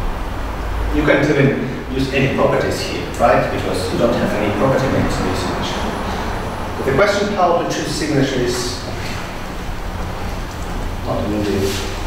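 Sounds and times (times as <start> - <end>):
low room rumble and hiss: 0.0 - 12.0.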